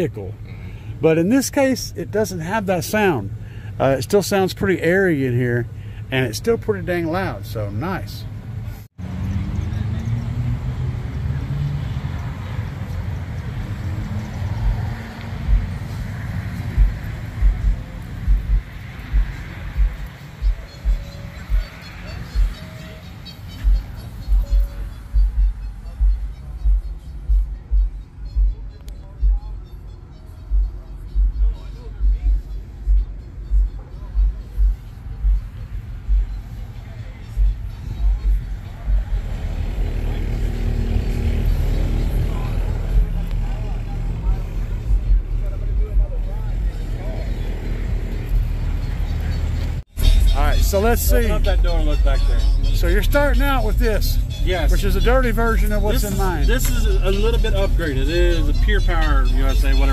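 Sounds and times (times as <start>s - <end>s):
low bass rumble: 7.6s - 22.8s, 23.4s - 29.6s, 30.4s - 59.9s
deep bass hits: 16.6s - 21.7s.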